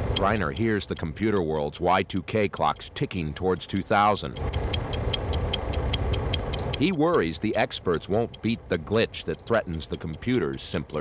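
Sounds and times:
clock ticking: 0.0s - 11.0s.

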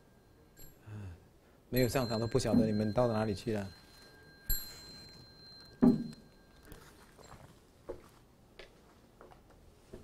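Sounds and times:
metal ritual bell ringing: 0.0s - 7.5s.

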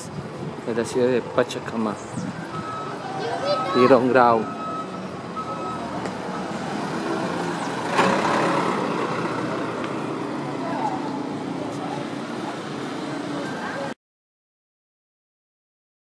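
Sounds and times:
minibus passing: 0.0s - 14.0s
steady traffic noise: 0.0s - 14.0s
reversing beep: 2.2s - 6.6s, 13.4s - 14.0s.

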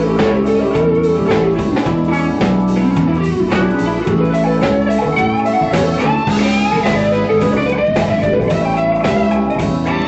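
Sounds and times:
drum kit beat: 0.0s - 10.0s
electric guitars: 0.0s - 10.0s
keyboard: 0.0s - 10.0s.

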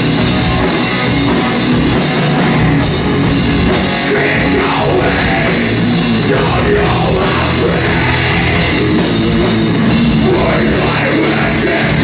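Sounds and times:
metal band playing live: 0.0s - 12.0s.

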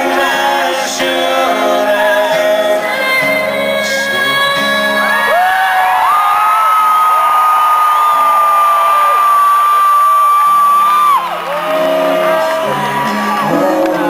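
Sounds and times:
person singing: 0.0s - 5.6s, 10.8s - 14.0s
audience whooping and shouting: 5.0s - 14.0s.

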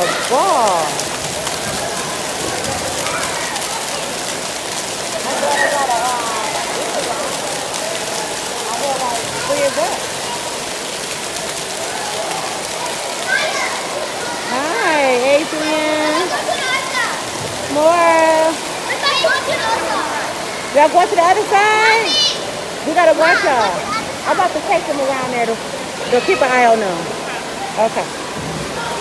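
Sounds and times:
children shouting: 0.0s - 4.5s, 5.2s - 8.7s, 11.6s - 17.7s, 18.6s - 20.7s, 22.0s - 22.6s
water jets spraying on floor: 0.0s - 29.0s.

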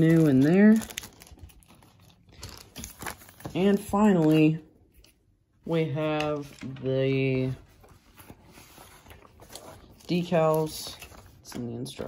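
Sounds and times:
plastic bag crinkling: 0.0s - 4.6s.

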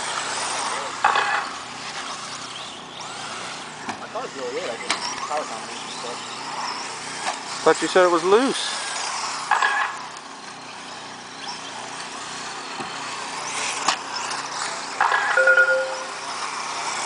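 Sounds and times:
steady noisy background: 0.0s - 17.0s.

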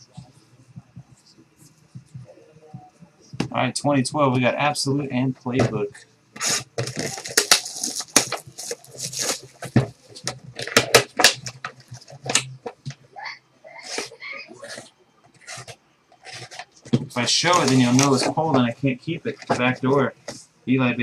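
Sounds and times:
shrink wrap tearing and crackling: 6.4s - 9.6s, 17.4s - 18.2s.

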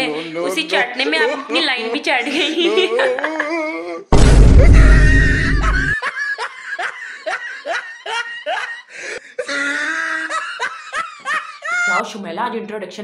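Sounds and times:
high-pitched laughter: 1.0s - 3.8s, 4.6s - 12.0s.

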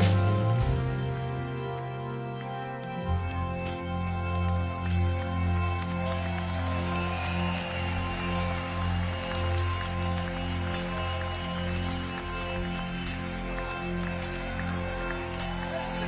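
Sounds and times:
sustained rock chords: 0.0s - 16.0s.

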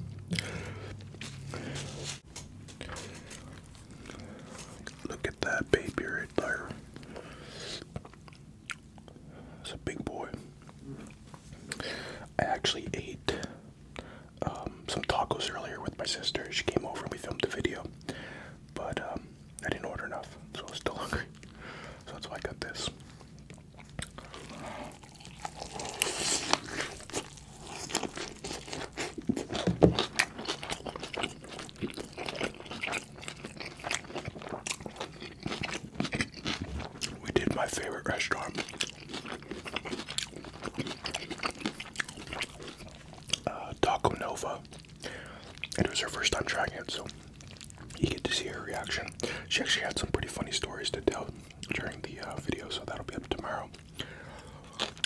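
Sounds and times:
wet chewing: 23.0s - 49.4s.

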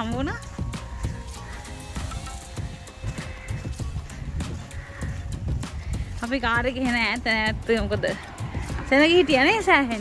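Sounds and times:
faint background music: 0.0s - 10.0s
footsteps walking: 0.0s - 10.0s
wind rumble on microphone: 0.0s - 10.0s.

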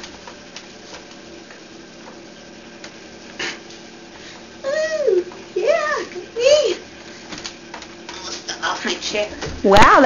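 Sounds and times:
faint clicks and rustles in chair: 0.0s - 4.4s, 7.0s - 9.9s.

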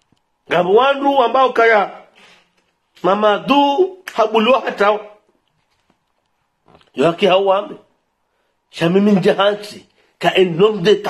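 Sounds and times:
man speaking: 0.5s - 2.2s, 3.0s - 5.3s, 6.8s - 7.9s, 8.7s - 11.0s.

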